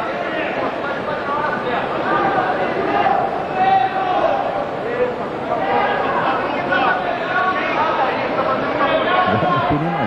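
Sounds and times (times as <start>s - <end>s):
crowd background din: 0.0s - 10.0s
crowd shouting: 9.0s - 10.0s.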